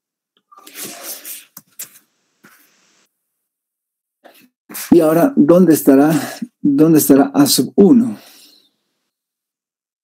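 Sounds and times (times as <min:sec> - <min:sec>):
man speaking: 0:04.8 - 0:08.5.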